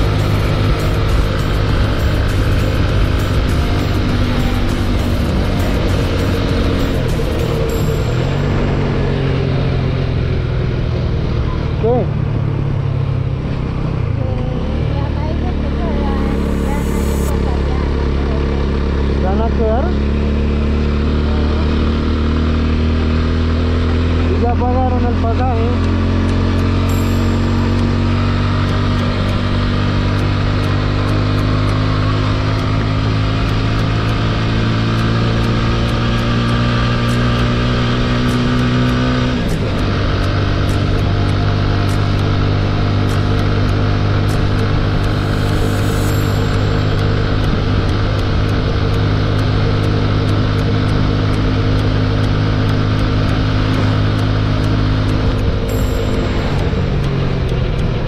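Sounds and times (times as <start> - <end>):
motorcycle engine accelerating: 0.0 - 58.0.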